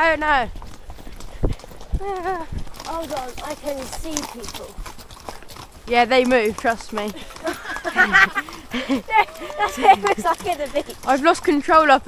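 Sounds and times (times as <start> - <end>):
hooves on gravel: 0.0 - 12.0.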